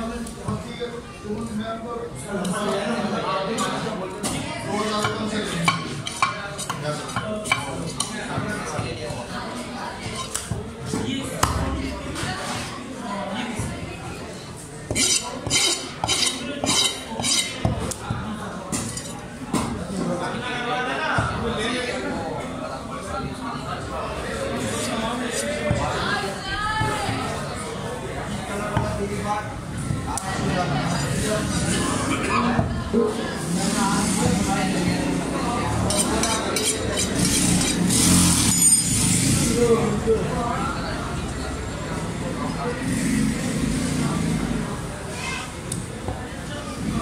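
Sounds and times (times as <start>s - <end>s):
knife scraping wooden board: 14.9s - 17.6s, 35.9s - 39.0s.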